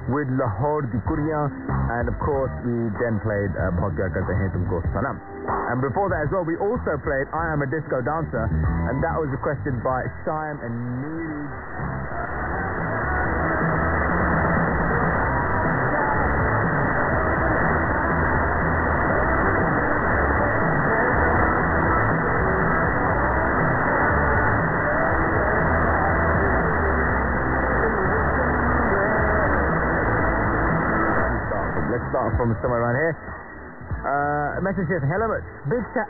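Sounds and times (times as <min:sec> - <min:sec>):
music on am radio: 0:00.0 - 0:36.0
radio noise: 0:00.0 - 0:36.0.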